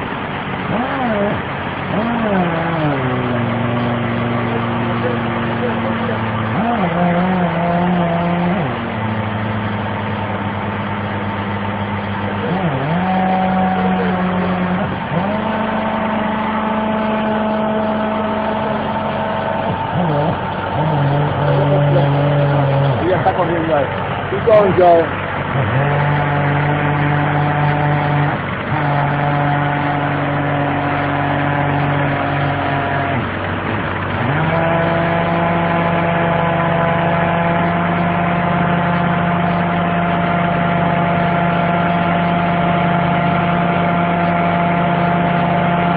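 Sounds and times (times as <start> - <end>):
air drill droning: 0.0 - 45.9.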